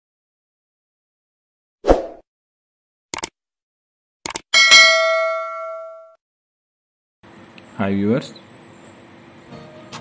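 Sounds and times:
bright bell ding: 4.6 - 6.2.

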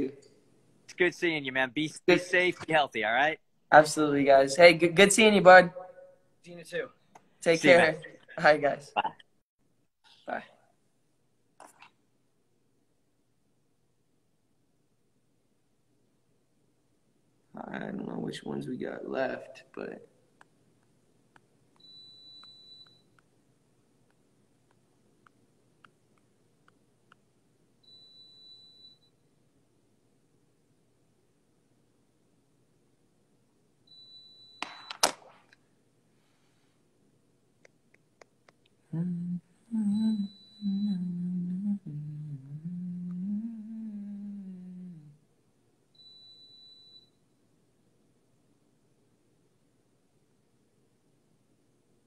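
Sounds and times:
faint high steady tone: 38.9 - 45.2
man humming: 38.9 - 45.2.

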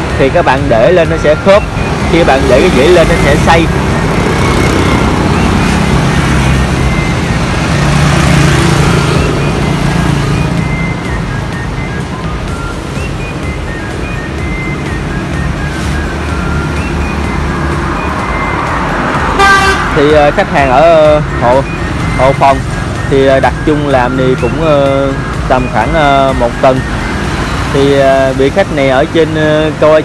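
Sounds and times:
vehicle passing on street: 0.0 - 30.0.

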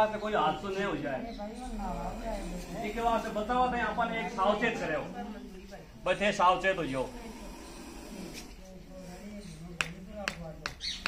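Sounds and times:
low indistinct voices: 0.0 - 11.0.

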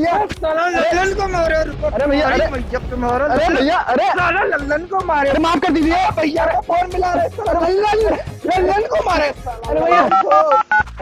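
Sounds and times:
man talking: 0.0 - 10.6
phone keypad two-tone beeps: 9.9 - 10.9.

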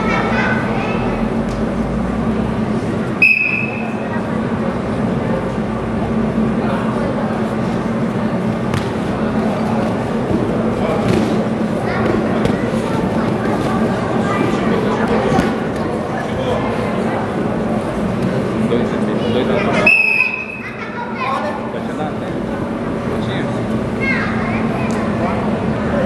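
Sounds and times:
spectators chattering: 0.0 - 26.0
referee's whistle blast: 3.2 - 3.8, 19.8 - 20.6.

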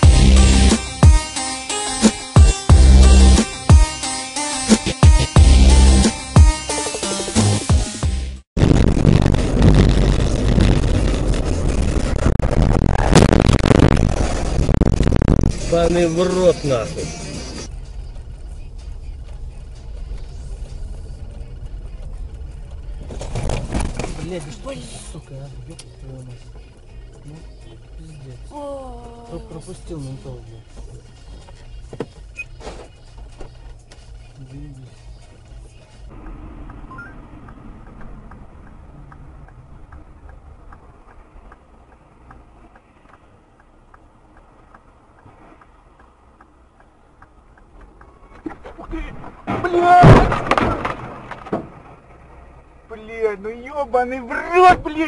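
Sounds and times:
road and engine noise: 0.0 - 55.0
light regular ticking: 30.6 - 48.5
sharp bang: 49.2 - 52.0.

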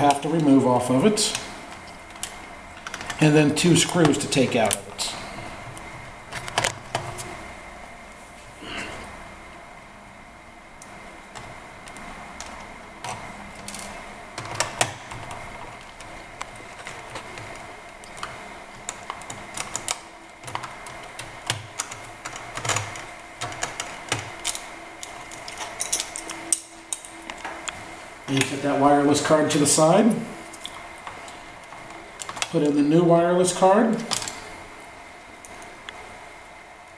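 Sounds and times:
faint steady hum: 0.0 - 36.9.

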